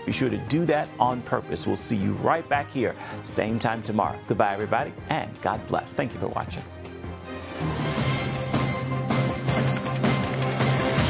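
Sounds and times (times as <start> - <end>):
drum beat: 8.3 - 11.0.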